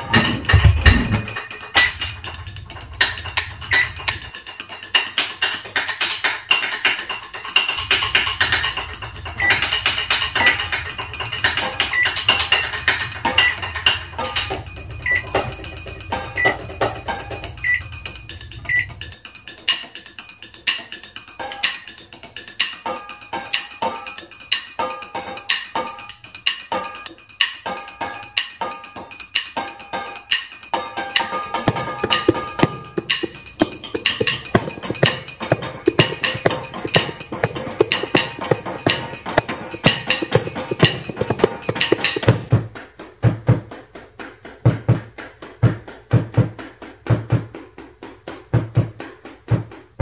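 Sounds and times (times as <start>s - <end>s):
drumsticks on practice pad: 31.7s - 42.5s
sticks striking metal saucepans: 31.7s - 42.5s.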